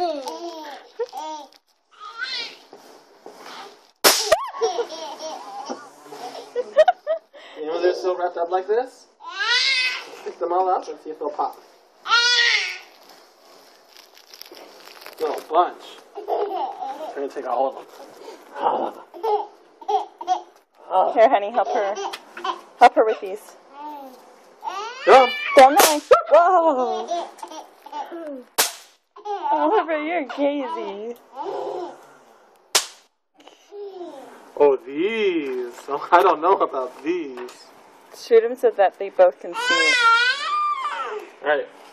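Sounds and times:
faint background noise: 0.0 - 41.9
child squealing: 2.0 - 2.6, 24.8 - 25.8, 39.6 - 41.2
snap pop cracking on concrete: 4.0 - 4.4, 25.7 - 26.2, 28.6 - 29.0, 32.7 - 33.1.

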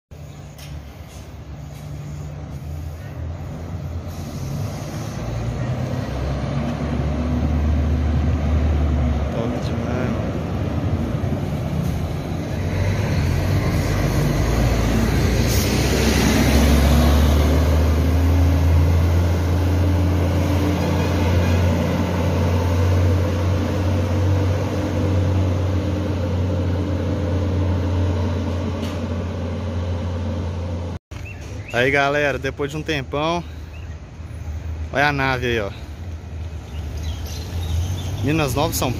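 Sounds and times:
coach diesel engine passing: 0.2 - 31.0, 31.7 - 38.9.

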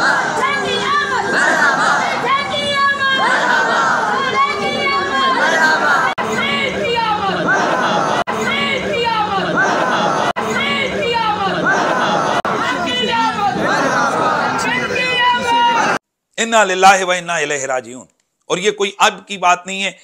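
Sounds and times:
crowd of men chanting: 0.0 - 6.2, 7.3 - 8.3, 9.4 - 10.4, 11.5 - 14.9.

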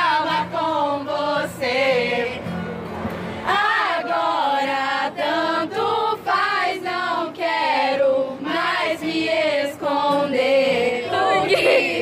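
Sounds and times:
young voices singing pop song: 0.0 - 2.6, 3.4 - 12.0
acoustic guitar: 0.0 - 12.0.

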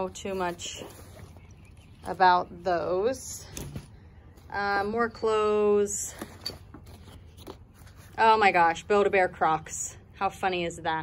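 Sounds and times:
rustling of clothes: 0.0 - 8.8.

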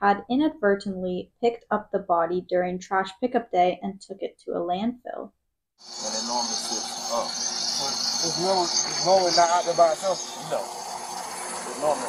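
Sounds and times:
low hum: 5.9 - 12.0
steady high hiss: 5.9 - 12.0
man speaking: 6.0 - 10.7, 11.8 - 12.0.

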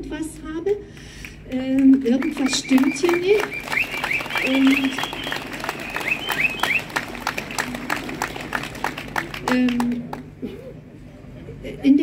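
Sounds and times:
small crowd applauding: 1.2 - 10.4.

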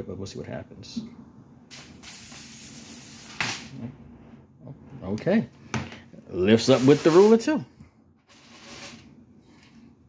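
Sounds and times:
corona discharge hiss: 1.7 - 3.7, 6.6 - 7.5.

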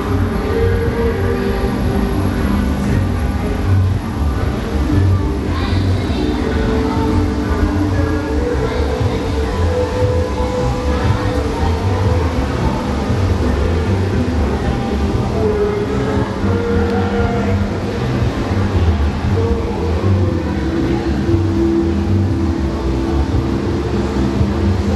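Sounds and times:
ambient music tones: 0.0 - 24.9.

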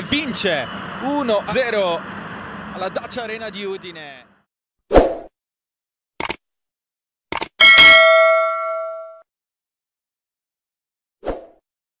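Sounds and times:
bright bell ding: 7.6 - 9.2.

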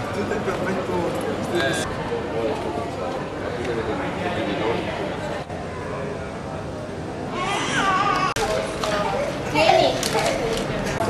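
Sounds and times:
young voices chattering: 0.0 - 11.0.

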